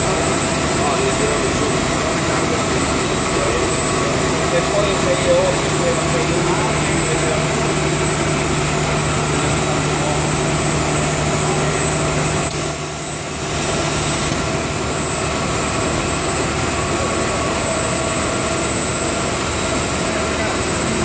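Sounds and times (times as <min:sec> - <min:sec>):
high-pitched machine whine: 0:00.0 - 0:21.0.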